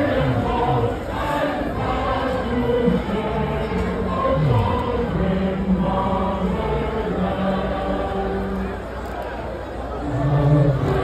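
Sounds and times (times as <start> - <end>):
group of voices singing: 0.0 - 9.0, 10.0 - 11.0
crowd noise: 0.0 - 11.0.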